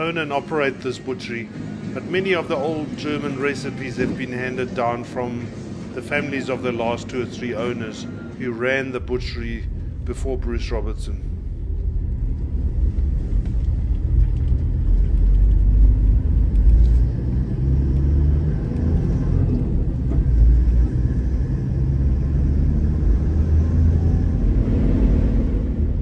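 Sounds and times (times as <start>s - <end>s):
vehicle rumbling on road: 8.0s - 26.0s.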